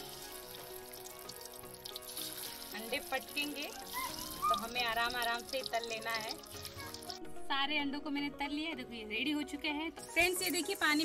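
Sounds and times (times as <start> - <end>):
eggs sizzling in hot oil: 0.0 - 7.2, 10.1 - 11.0
background music: 0.0 - 11.0.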